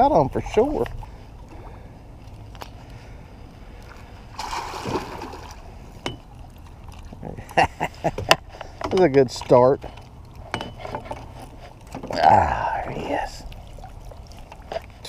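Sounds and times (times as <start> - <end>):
fish thrashing at water surface: 4.2 - 7.3
water splash: 4.3 - 5.8.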